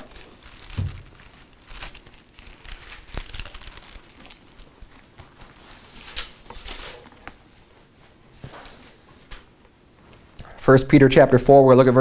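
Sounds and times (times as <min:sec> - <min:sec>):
thin pages rustling: 0:00.0 - 0:09.4.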